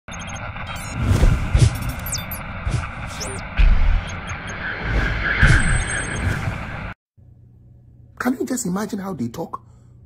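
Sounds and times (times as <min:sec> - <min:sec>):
high chiming whooshes: 0:03.1 - 0:07.0.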